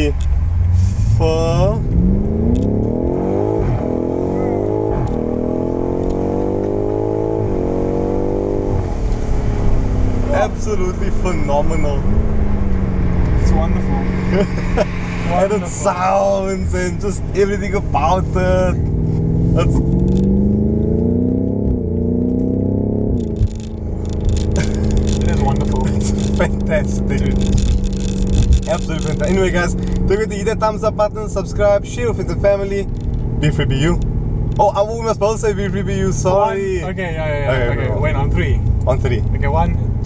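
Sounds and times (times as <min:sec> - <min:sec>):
car engine accelerating: 0:00.0 - 0:40.0.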